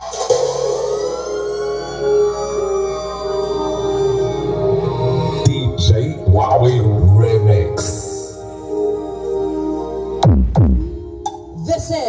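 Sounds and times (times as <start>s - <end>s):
siren-like synth tone: 0.0s - 7.1s
electronic dance music: 0.0s - 8.5s.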